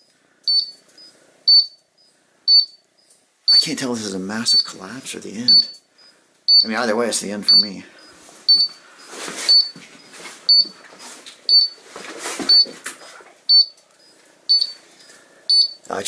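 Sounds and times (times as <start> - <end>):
alarm short high beeps: 0.5 - 1.8, 2.5 - 2.8, 3.5 - 3.7, 5.4 - 6.8, 7.4 - 7.8, 8.5 - 8.8, 9.5 - 9.8, 10.5 - 10.8, 11.5 - 11.8, 12.5 - 12.7, 13.5 - 13.8, 14.5 - 14.8, 15.5 - 15.8
rustling of movement: 4.8 - 15.8.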